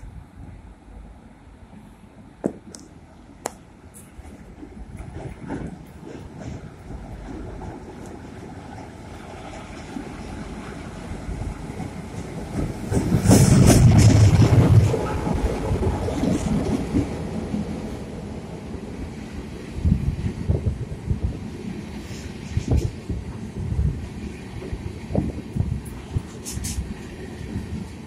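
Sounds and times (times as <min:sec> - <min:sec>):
freight train deep rumble: 0:00.0 - 0:28.0.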